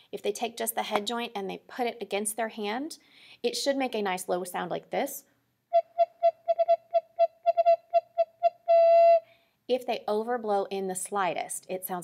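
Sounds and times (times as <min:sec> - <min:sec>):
recorder low tongued notes: 0:05.7 - 0:09.3.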